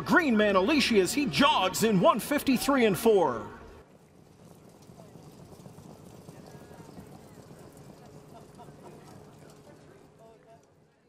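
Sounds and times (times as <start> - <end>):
hoofbeats on dirt track: 3.8 - 10.8.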